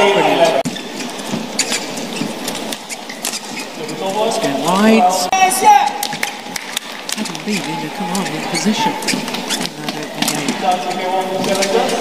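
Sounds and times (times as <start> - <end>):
shoes on court floor: 0.0 - 12.0.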